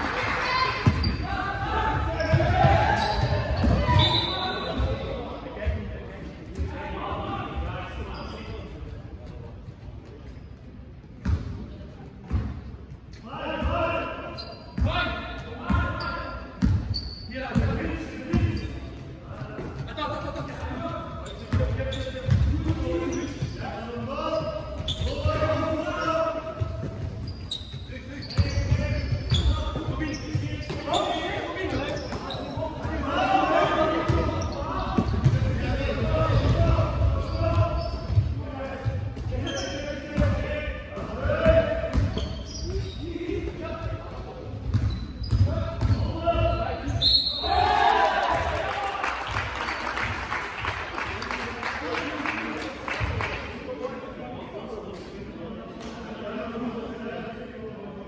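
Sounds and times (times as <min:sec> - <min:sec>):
players calling out: 0:00.2 - 0:05.0
basketball bouncing on court: 0:11.2 - 0:11.6, 0:16.6 - 0:18.6, 0:21.3 - 0:23.6, 0:34.1 - 0:35.7, 0:41.0 - 0:43.0, 0:44.6 - 0:46.1.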